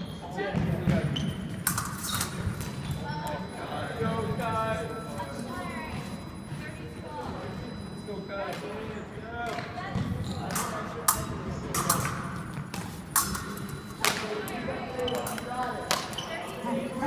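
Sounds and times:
background voices in a hall: 0.0 - 17.0
fencing blades clicking: 1.6 - 2.4, 10.5 - 12.2, 12.8 - 16.2.

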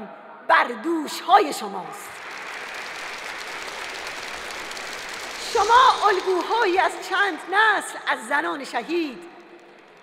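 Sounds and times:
audience applauding: 2.0 - 7.6, 9.0 - 10.0.

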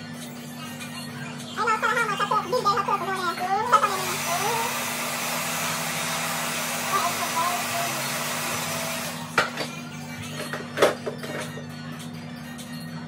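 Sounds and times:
hair dryer blowing: 3.8 - 9.4.

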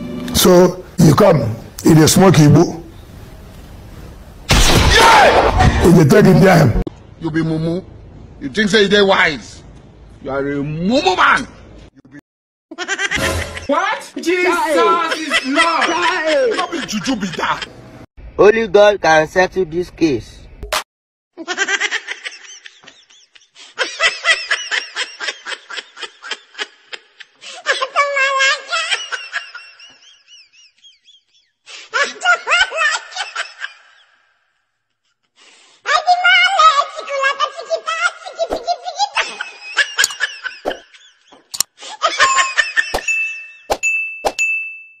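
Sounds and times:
high-pitched laughter: 12.7 - 13.8, 21.4 - 34.3, 35.9 - 43.1
high bell-like ding: 42.2 - 45.0.

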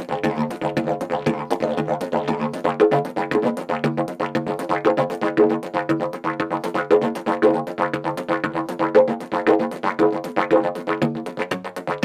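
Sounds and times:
rhythmic didgeridoo drone: 0.0 - 12.0.

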